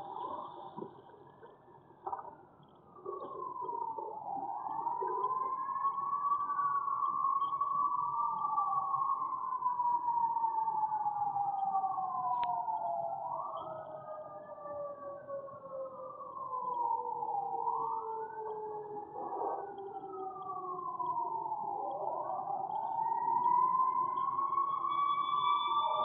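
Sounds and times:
distant sirens wailing: 2.9 - 26.0.

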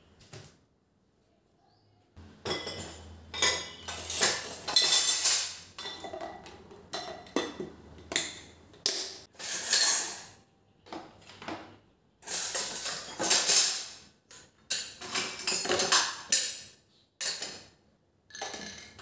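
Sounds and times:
dishes clinking into plastic tub: 2.2 - 17.7, 18.3 - 19.0.

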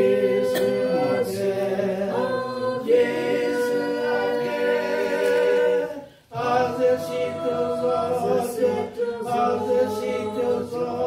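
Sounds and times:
voices singing a hymn unaccompanied: 0.0 - 11.0.

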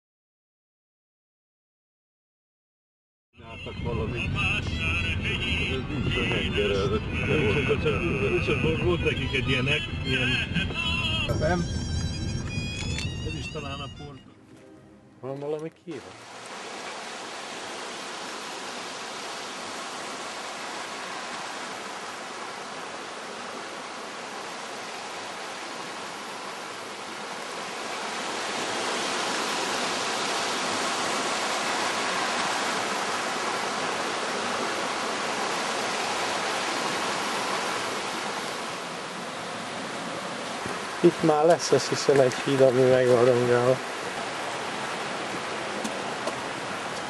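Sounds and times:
river water rushing: 15.9 - 47.0.

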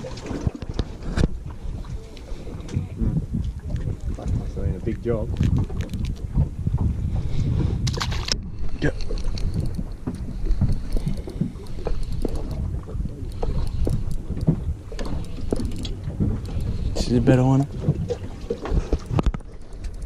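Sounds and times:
water around a boat: 0.0 - 20.0
wind rumbling on microphone: 0.0 - 20.0
fishing reel spinning: 9.2 - 12.6, 13.3 - 17.5.

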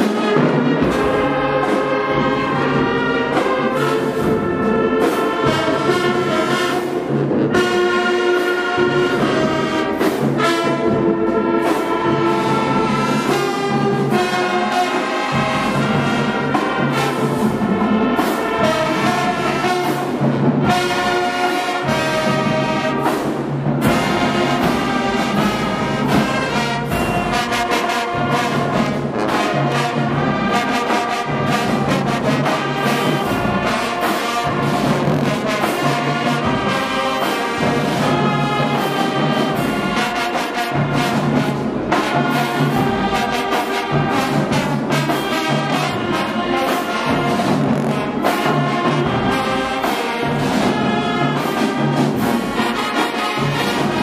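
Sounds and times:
brass and saxophones: 0.0 - 54.0
marching band playing: 0.0 - 54.0
percussion beat: 0.0 - 54.0.

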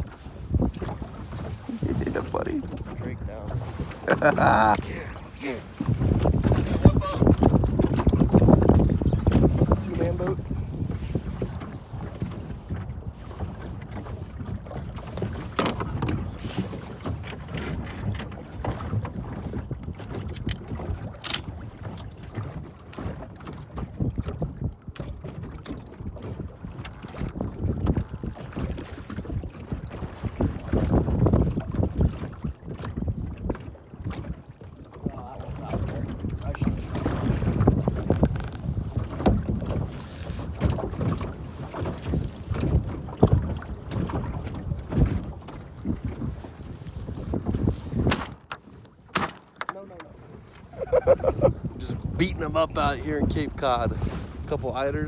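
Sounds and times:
wind buffeting microphone: 0.0 - 49.1, 50.1 - 55.0
water slapping against hull: 0.0 - 55.0.

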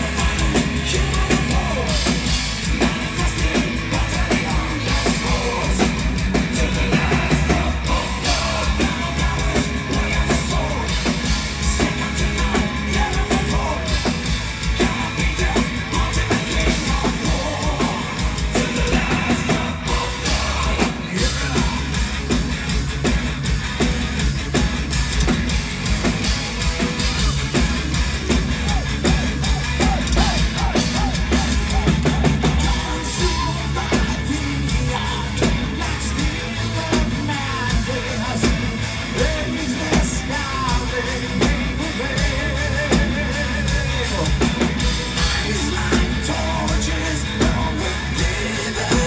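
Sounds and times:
bass guitar: 0.0 - 49.0
distorted electric guitars: 0.0 - 49.0
heavy bass drum: 0.0 - 49.0
male lead singer: 0.0 - 49.0.

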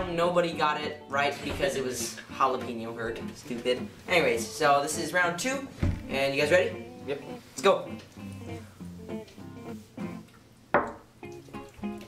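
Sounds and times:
plucked acoustic guitar: 0.0 - 12.0.

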